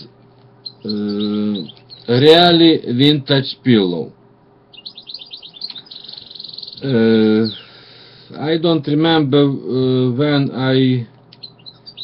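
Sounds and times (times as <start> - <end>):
small bird chirping: 0.0 - 2.9, 4.7 - 7.8, 11.2 - 12.0.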